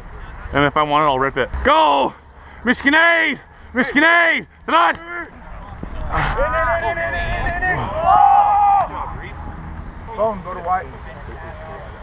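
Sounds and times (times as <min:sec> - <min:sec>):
men shouting long calls: 0:06.1 - 0:09.5.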